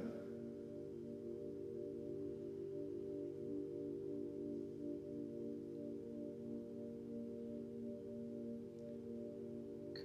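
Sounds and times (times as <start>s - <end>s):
ambient drone music: 0.0s - 10.0s.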